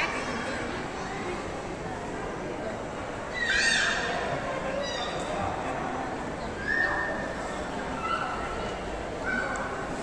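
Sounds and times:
hubbub of people talking: 0.0s - 10.0s
child's high-pitched calls: 3.3s - 4.2s.

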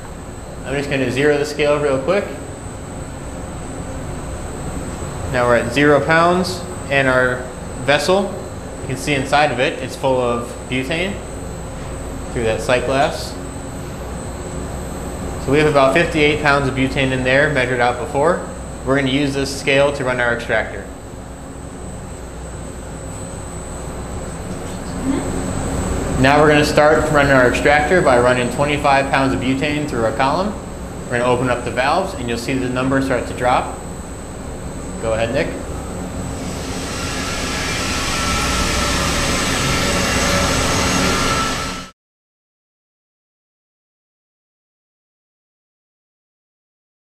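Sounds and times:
high steady whine: 0.0s - 41.9s
low mechanical rumble: 0.0s - 41.9s.

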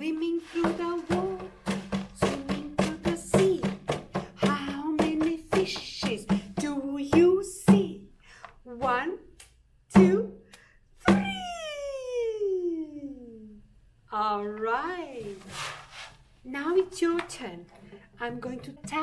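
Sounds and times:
woman chanting: 0.0s - 3.8s
barrel drum tapped with palms: 0.6s - 8.0s.

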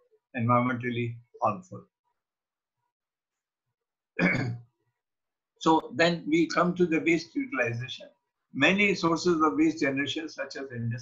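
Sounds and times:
man clearing throat: 4.2s - 4.6s.

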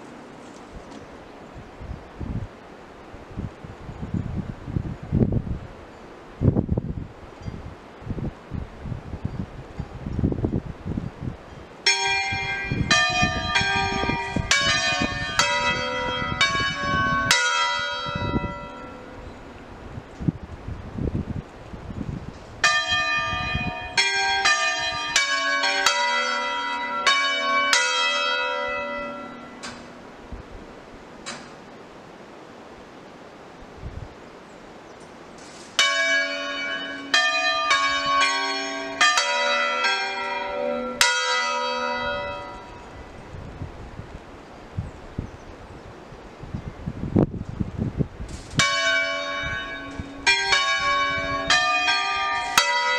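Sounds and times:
church bells ringing: 11.8s - 19.6s, 22.6s - 30.0s, 35.8s - 43.0s, 48.6s - 52.9s.

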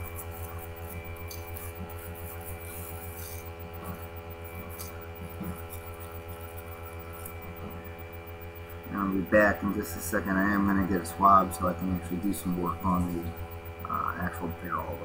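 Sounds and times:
brush rubbing: 0.0s - 8.0s
electrical mains hum: 0.0s - 15.0s.

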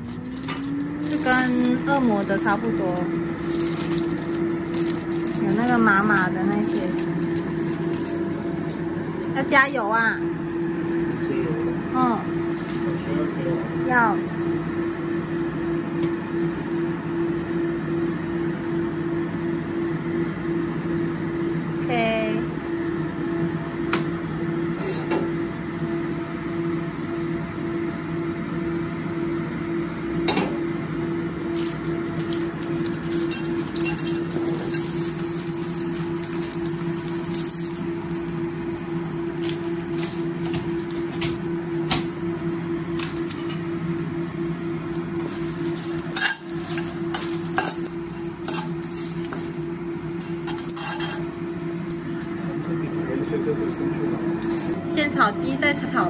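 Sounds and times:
spices frying in hot oil: 0.0s - 20.7s, 30.2s - 56.0s
kitchen hum: 0.0s - 56.0s
spatula scraping metal wok: 45.2s - 49.6s, 50.2s - 51.3s.

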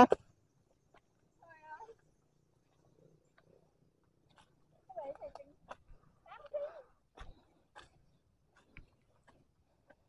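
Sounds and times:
faint ticks: 0.9s - 6.6s.

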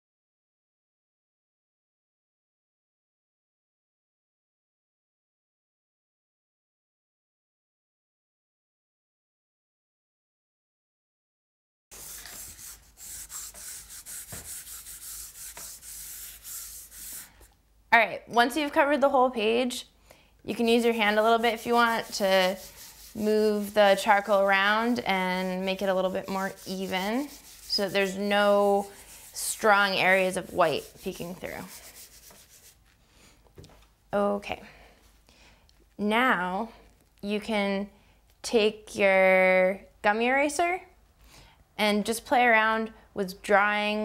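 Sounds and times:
charcoal rubbing on paper: 11.9s - 17.5s, 20.8s - 33.0s.

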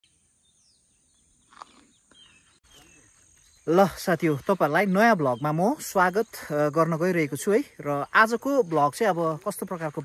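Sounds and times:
faint bird chirps: 0.0s - 8.7s.

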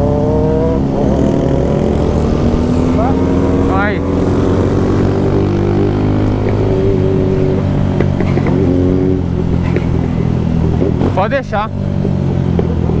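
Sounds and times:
motorcycle engine cruising: 0.0s - 13.0s.

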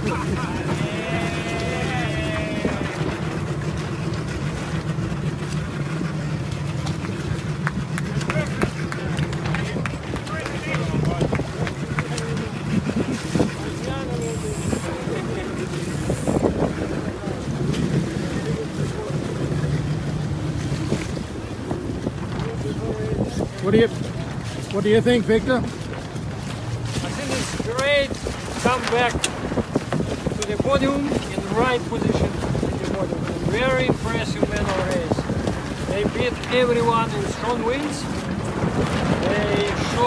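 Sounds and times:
indistinct voices: 0.0s - 5.2s
boat engine idling: 0.0s - 40.0s
wind on microphone: 0.0s - 40.0s.

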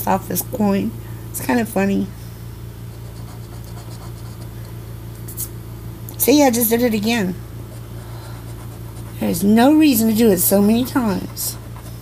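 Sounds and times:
coin scratching lottery ticket: 3.0s - 4.5s.

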